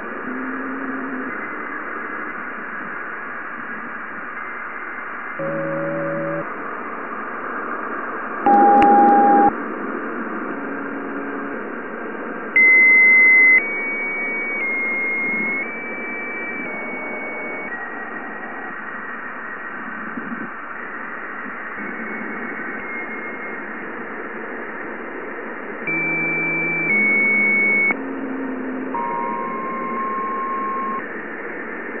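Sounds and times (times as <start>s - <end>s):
steady radio-like hiss: 0.0s - 32.0s
pure tones jumping in pitch: 5.4s - 6.5s, 8.5s - 9.5s, 25.9s - 28.0s, 28.9s - 31.0s.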